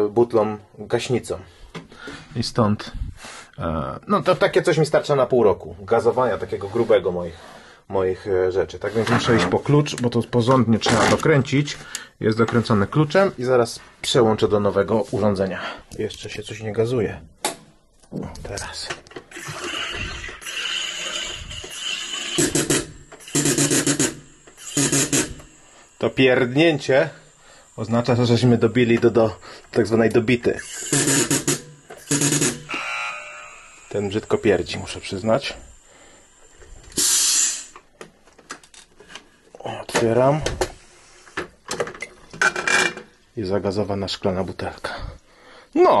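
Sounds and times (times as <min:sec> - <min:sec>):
glass bottle scraping out of metal: 0:19.3 - 0:22.6
gas hissing into bottle: 0:19.3 - 0:32.8, 0:33.7 - 0:37.9
loud buzzing pressure-relief bursts: 0:19.3 - 0:37.9.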